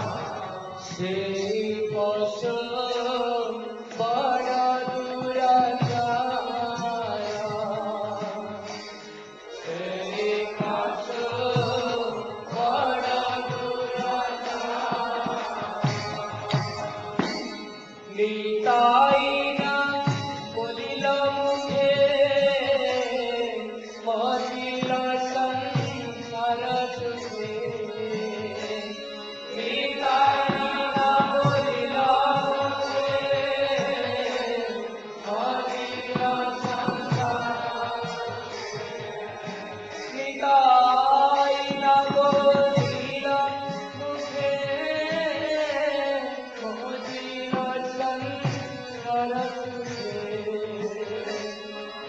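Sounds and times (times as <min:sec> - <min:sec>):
voices chanting a sung melody: 0:00.0 - 0:01.8, 0:09.5 - 0:52.0
musical accompaniment: 0:00.0 - 0:52.0.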